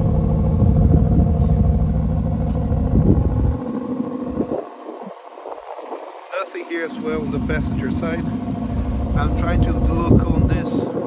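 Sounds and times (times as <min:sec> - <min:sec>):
car engine idling: 0:00.0 - 0:11.0
faint hum: 0:00.0 - 0:11.0.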